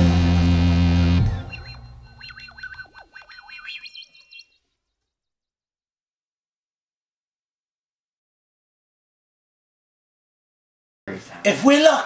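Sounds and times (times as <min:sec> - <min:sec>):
wavering synthesizer tones: 0:00.9 - 0:04.6.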